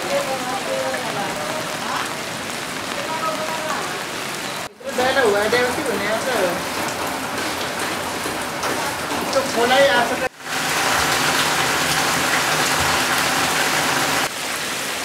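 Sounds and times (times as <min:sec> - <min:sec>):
people's voices: 0:00.0 - 0:06.6
steady rain falling: 0:00.0 - 0:15.0.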